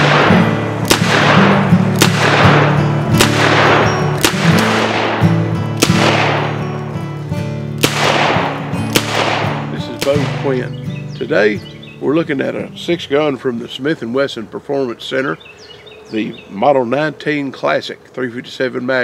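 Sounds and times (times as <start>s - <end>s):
revolver shots: 0.0s - 6.8s, 7.8s - 10.5s
background guitar music: 0.0s - 14.6s.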